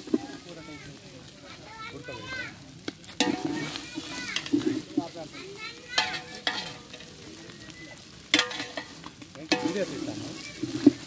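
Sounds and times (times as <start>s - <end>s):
faint sizzle: 0.0s - 11.0s
metal spatula scraping a pot: 3.2s - 5.0s, 6.0s - 7.2s, 8.3s - 11.0s.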